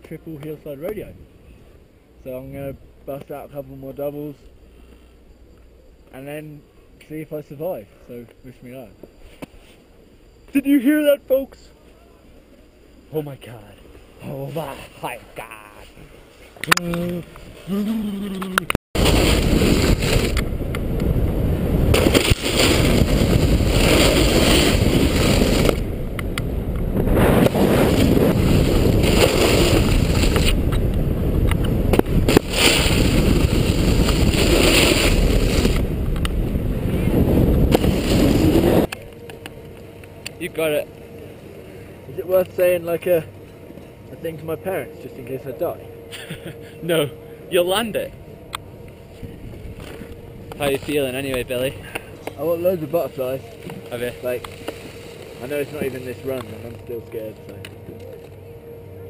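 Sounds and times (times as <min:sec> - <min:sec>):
chairlift hum and rumble: 0:00.0 - 0:59.0
snowboard scraping on snow: 0:19.0 - 0:20.4, 0:21.1 - 0:26.0, 0:26.9 - 0:38.9
wind rushing over microphone: 0:19.0 - 0:39.0.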